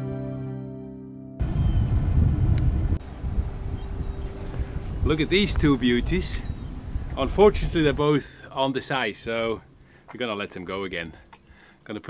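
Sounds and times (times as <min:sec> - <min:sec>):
wind rumbling on microphone: 0:01.4 - 0:08.2.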